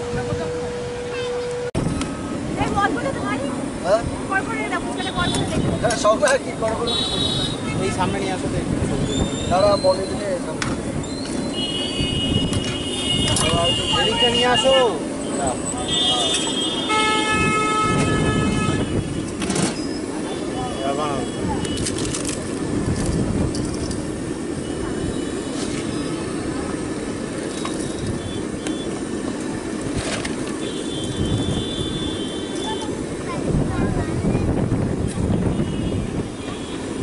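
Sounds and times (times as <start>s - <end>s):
crowd noise: 0.0s - 37.0s
steady traffic: 0.0s - 37.0s
vehicle horn: 6.8s - 8.2s, 11.5s - 15.0s, 15.8s - 19.2s, 30.6s - 32.9s, 35.4s - 37.0s.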